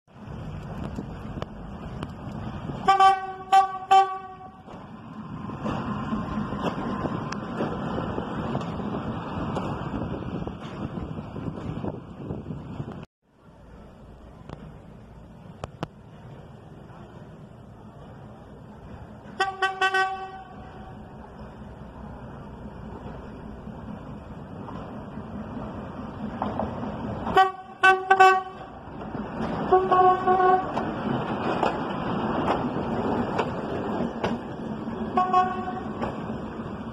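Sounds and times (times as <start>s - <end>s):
railcar rumble: 0.1s - 36.9s
railcar horn blasts: 2.8s - 4.8s, 19.3s - 21.0s, 27.2s - 28.8s, 29.6s - 30.8s, 35.1s - 36.0s.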